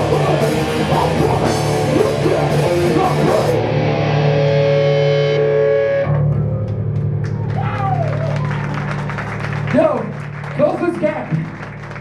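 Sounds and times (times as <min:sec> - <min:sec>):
distorted electric guitar: 0:00.0 - 0:07.3
low amp buzz: 0:00.0 - 0:07.6.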